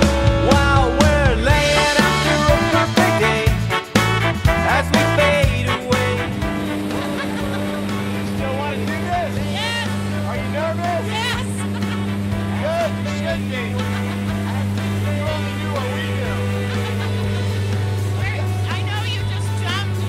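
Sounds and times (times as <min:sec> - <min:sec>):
light aircraft engine drone: 0:06.1 - 0:20.0.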